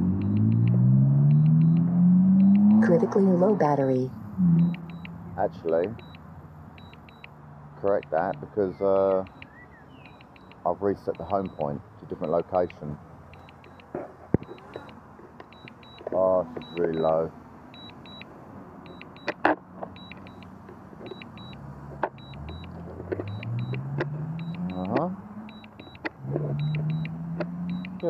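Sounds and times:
drone motors humming: 0.0 - 7.4
sharp click: 0.2 - 2.8
short high beeps in pairs: 1.3 - 2.9, 4.4 - 7.4, 8.3 - 17.2, 17.8 - 18.3, 18.9 - 28.0.

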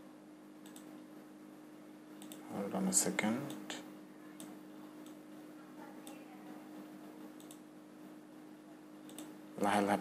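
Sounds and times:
low electrical hum: 0.0 - 10.0
computer mouse clicks: 0.6 - 0.9, 2.2 - 2.4, 7.4 - 7.6, 9.0 - 9.3.

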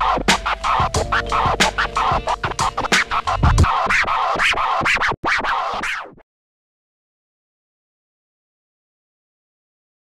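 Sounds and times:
turntable scratches: 0.0 - 6.2.

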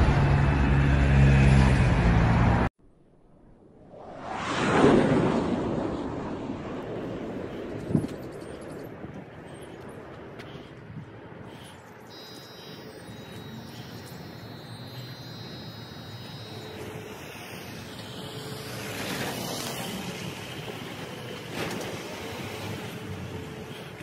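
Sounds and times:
road traffic: 0.0 - 2.7, 5.7 - 24.0
faint high whine: 11.5 - 24.0.

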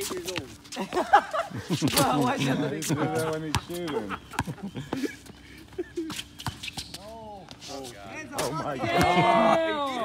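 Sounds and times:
men calling out: 8.2 - 10.0.

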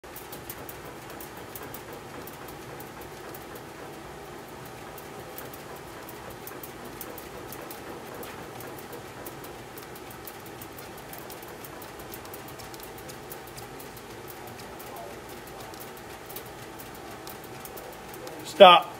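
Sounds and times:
machine rolling noise: 0.0 - 18.9
faint steady hum: 0.1 - 18.9
light ticks: 4.5 - 18.7.

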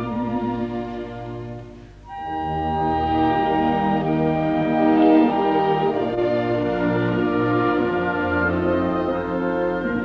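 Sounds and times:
orchestra playing sustained chords: 0.0 - 10.0.

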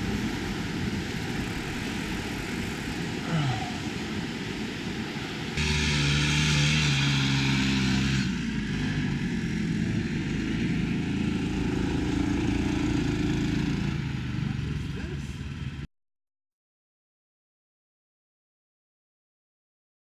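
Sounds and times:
mountain bike rolling: 0.0 - 14.6
motorcycle engine: 0.0 - 15.9
wind: 0.0 - 15.9.

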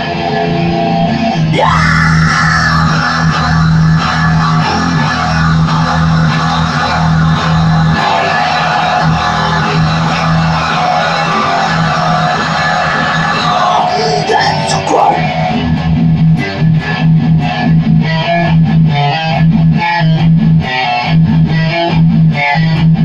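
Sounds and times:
electric guitar rock riff: 0.0 - 23.0.

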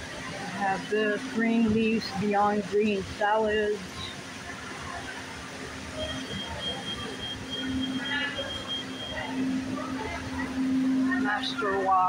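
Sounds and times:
murmur of people: 0.0 - 12.0
faint high beeping tone: 6.0 - 9.6.

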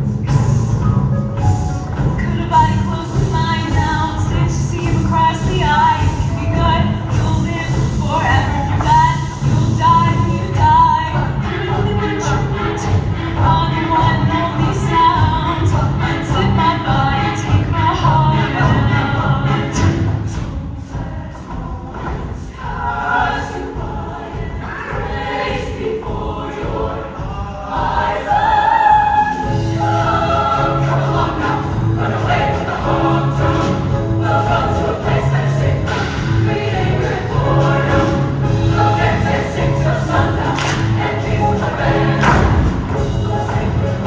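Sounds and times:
choir singing: 1.6 - 44.0
drum hits: 19.8 - 44.0
instrumental accompaniment: 22.1 - 44.0.

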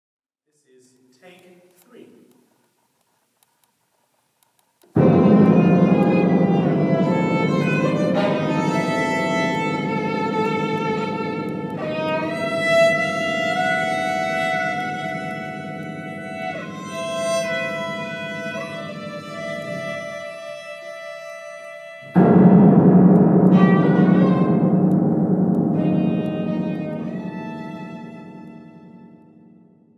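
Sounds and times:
contemporary classical ensemble music: 5.0 - 29.3.

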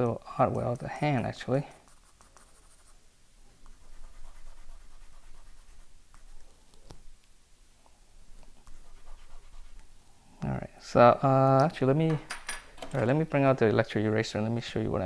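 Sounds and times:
pencil scratching on paper: 0.4 - 3.0, 3.6 - 7.0, 8.5 - 9.9.

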